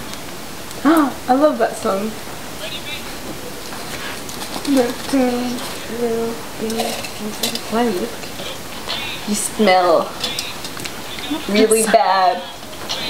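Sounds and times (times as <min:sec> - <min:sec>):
steady background hiss: 0:00.0 - 0:13.0
woman speaking slowly: 0:04.7 - 0:08.2, 0:11.3 - 0:12.4.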